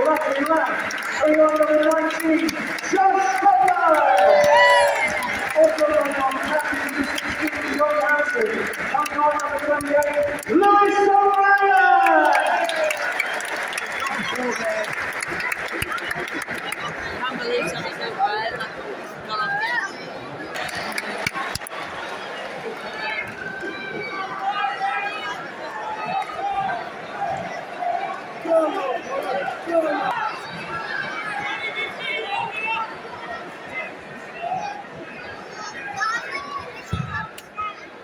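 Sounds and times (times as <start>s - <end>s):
crowd roar: 0.0s - 17.4s, 19.7s - 36.2s
crowd chanting and singing: 20.6s - 33.9s.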